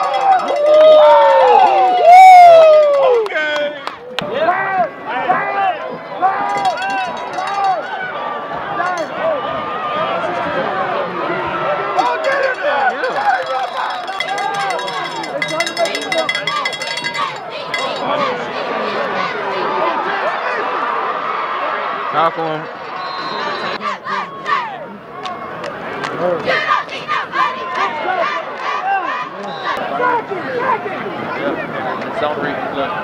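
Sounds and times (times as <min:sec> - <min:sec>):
crowd talking and shouting: 0:00.0 - 0:33.0
light metallic jingling: 0:06.5 - 0:08.0, 0:12.0 - 0:18.1.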